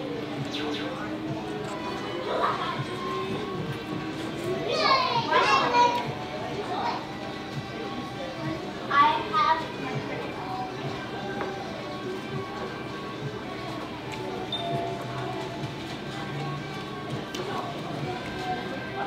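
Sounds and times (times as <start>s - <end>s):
background music: 0.0s - 19.0s
high-pitched voices: 0.0s - 19.0s.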